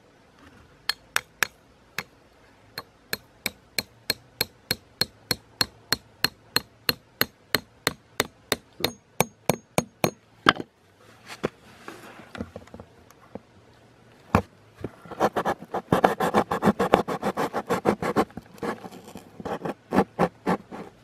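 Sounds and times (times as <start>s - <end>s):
axe hammering metal pin: 0.9s - 2.1s, 2.8s - 10.6s.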